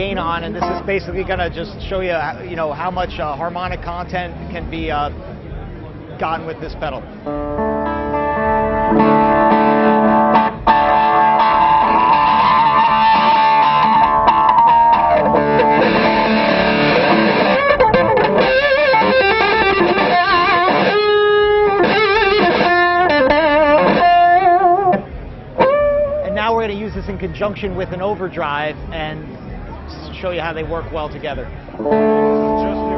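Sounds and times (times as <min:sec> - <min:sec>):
driven electric guitar: 0:00.5 - 0:00.9, 0:07.2 - 0:26.4, 0:31.7 - 0:32.9.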